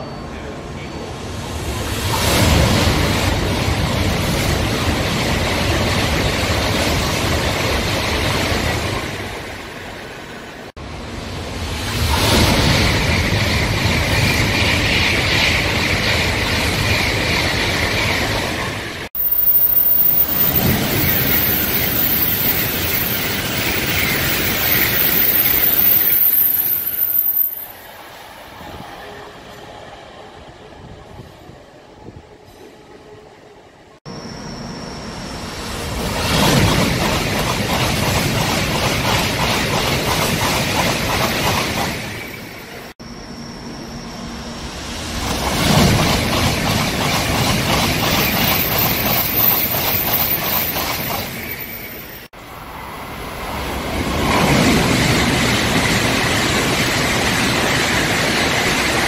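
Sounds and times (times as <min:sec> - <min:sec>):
high-speed trains passing: 0:00.0 - 0:59.0
train high whine: 0:00.0 - 0:59.0.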